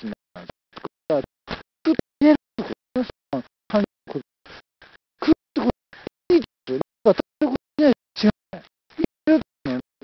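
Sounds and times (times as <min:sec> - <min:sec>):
choppy fragmented voice: 0:00.0 - 0:04.6, 0:05.2 - 0:09.8.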